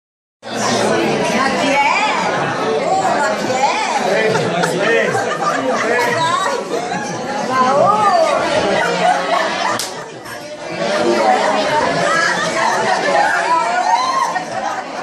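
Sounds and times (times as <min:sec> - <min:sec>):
chatter of voices: 0:00.4 - 0:15.0.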